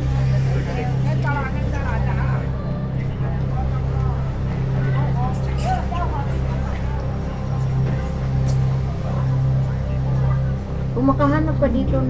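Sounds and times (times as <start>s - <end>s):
low drone of traffic: 0.0s - 12.0s
passers-by talking: 0.0s - 12.0s.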